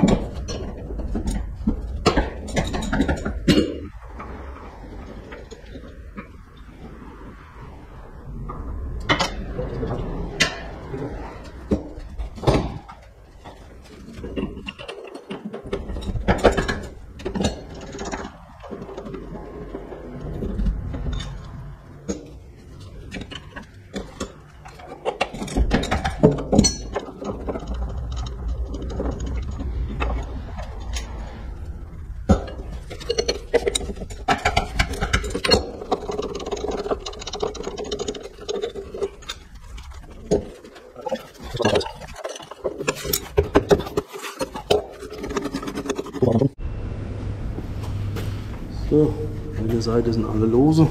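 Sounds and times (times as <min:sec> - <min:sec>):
steady hum: 0:00.0 - 0:44.0, 0:44.8 - 0:50.9.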